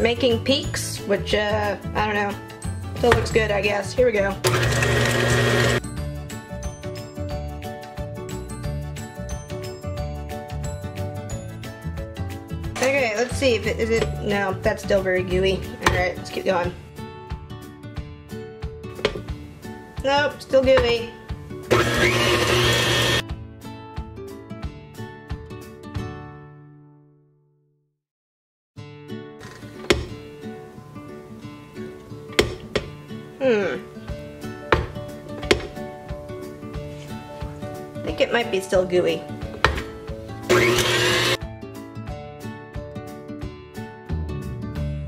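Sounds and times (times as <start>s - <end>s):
background music: 0.0s - 27.2s, 28.8s - 45.0s
electric mixer whining: 4.4s - 5.8s, 21.7s - 23.2s, 40.5s - 41.4s.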